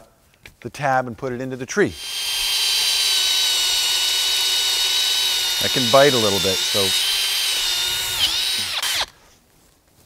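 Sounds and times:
cordless drill whining: 1.9 - 9.2.

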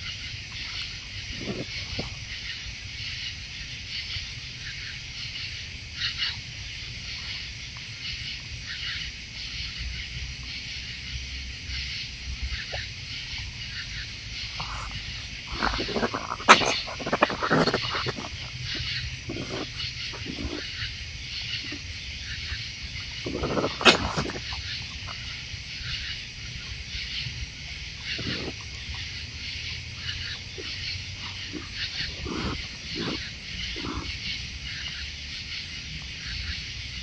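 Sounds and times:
raccoon growls and snarls: 0.0 - 10.9, 11.6 - 37.0
night insects chirring: 0.0 - 37.0
raccoons feeding: 0.0 - 37.0.

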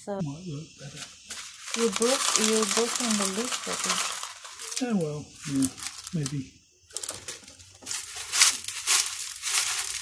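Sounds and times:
clay pebbles rattling in plastic pot: 1.3 - 10.0.

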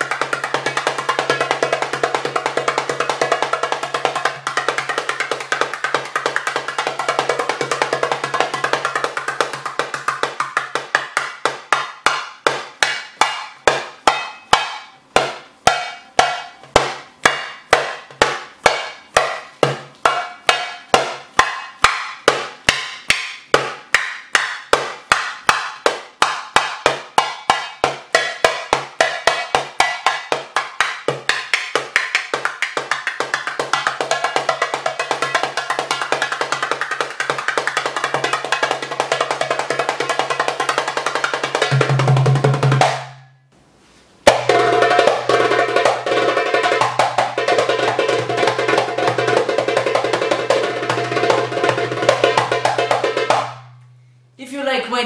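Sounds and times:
goblet drum played by hand: 0.0 - 43.3, 44.2 - 53.8.

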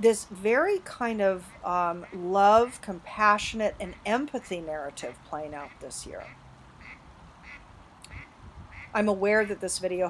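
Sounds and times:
ducks quacking: 5.6 - 9.0.

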